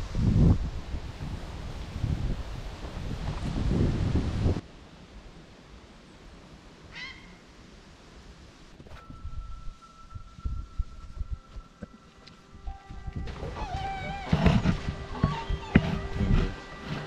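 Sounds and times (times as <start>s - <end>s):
wind buffeting microphone: 0.0s - 4.6s.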